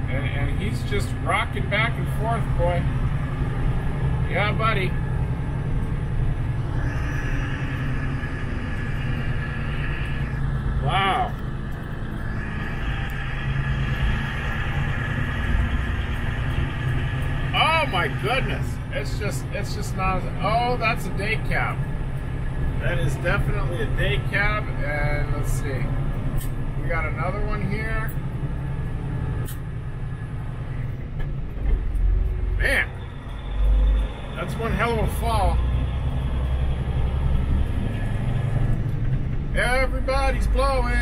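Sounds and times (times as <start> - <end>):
heavy low rumbles: 0.0 - 41.0
truck diesel engine and road noise: 0.0 - 41.0.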